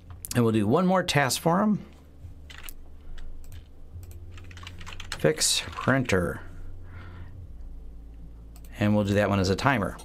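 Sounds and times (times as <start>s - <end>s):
low steady hum: 0.0s - 10.0s
keyboard typing: 2.5s - 6.2s.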